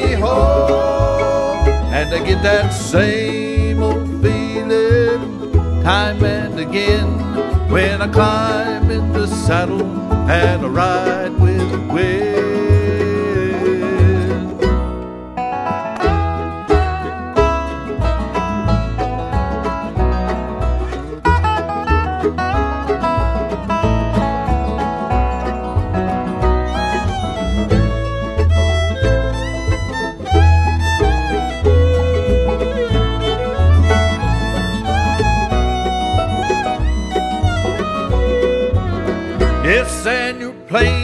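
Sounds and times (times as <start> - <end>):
fiddle sliding held notes: 0.0 - 15.0, 15.6 - 41.0
bluegrass band playing: 0.0 - 41.0.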